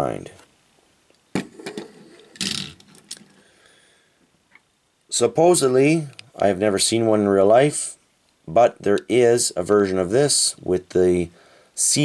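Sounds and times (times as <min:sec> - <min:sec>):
toy car clicking on table: 0:01.6 - 0:03.2.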